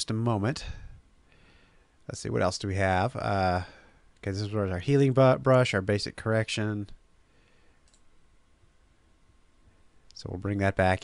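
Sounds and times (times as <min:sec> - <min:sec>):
computer mouse click: 0:07.8 - 0:08.1.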